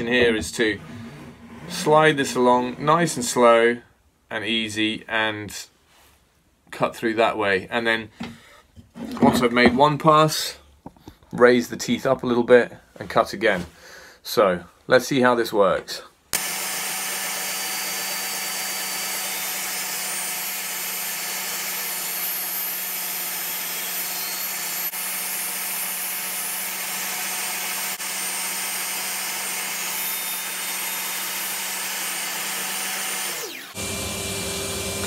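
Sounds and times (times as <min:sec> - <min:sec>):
table saw cutting wood: 0:00.0 - 0:03.4, 0:16.4 - 0:35.0.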